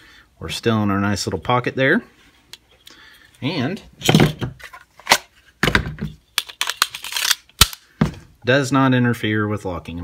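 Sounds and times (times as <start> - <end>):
sharp clicks of gun parts: 6.4 - 7.9.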